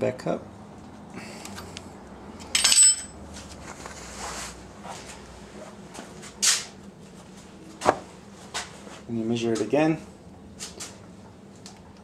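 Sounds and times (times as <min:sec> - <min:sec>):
metal hand tools clinking: 0:02.6 - 0:03.2.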